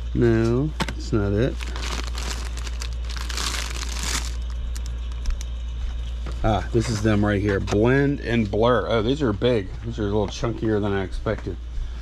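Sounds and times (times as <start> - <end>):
steady low hum: 0.0 - 12.0
plastic bags crinkling: 1.5 - 5.4.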